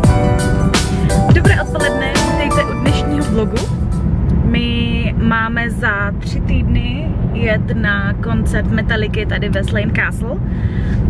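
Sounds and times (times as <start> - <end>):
music track: 0.0 - 4.4
car cabin road rumble: 0.0 - 11.0
woman talking: 1.3 - 3.7, 4.4 - 10.4.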